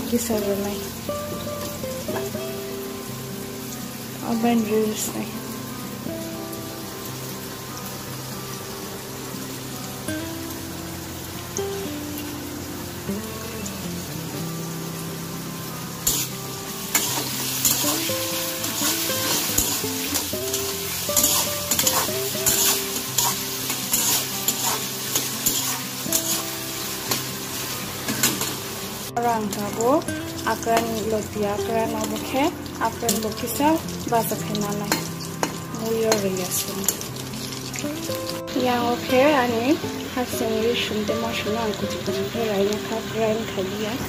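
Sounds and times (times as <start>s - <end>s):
background music: 0.0s - 44.0s
potatoes sizzling in hot oil: 0.0s - 44.0s
spatula scraping a wok: 16.0s - 28.6s.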